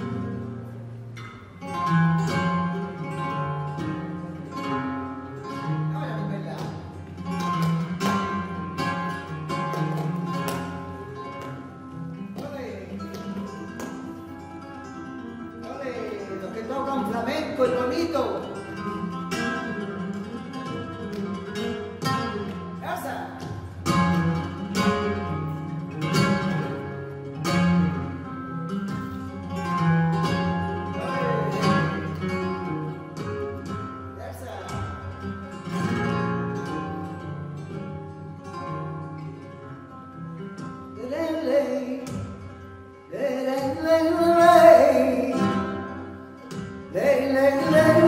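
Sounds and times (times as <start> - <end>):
flamenco guitar: 0.0 - 48.0
woman singing flamenco: 28.9 - 34.0, 40.6 - 48.0.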